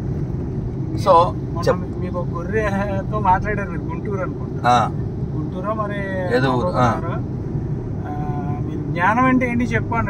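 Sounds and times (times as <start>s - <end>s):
car engine and tyres rumbling: 0.0s - 10.0s.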